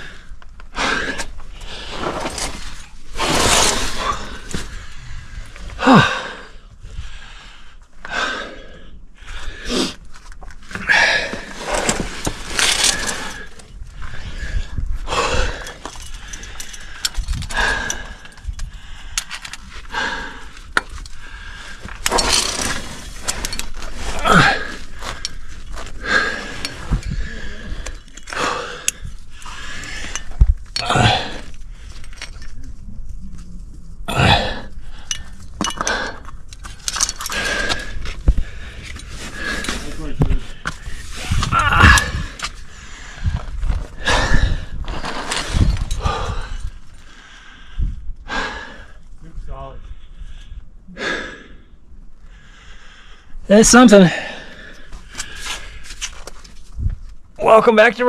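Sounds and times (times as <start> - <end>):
scraping against rock: 1.2 - 5.0, 10.1 - 14.2, 20.7 - 30.5, 44.7 - 46.0
man breathing hard and gasping: 3.9 - 10.1, 10.7 - 22.8, 23.5 - 32.5, 34.1 - 49.1, 49.8 - 55.9
carabiners clinking: 10.7 - 13.7, 15.5 - 19.7, 20.7 - 32.6, 34.8 - 40.0.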